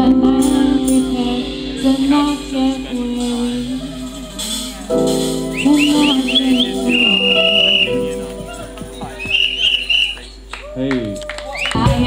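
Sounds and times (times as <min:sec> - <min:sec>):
held sung note: 0:00.0 - 0:10.4
reggae on acoustic and electric guitars: 0:00.0 - 0:10.5
high whistled notes: 0:01.0 - 0:10.8.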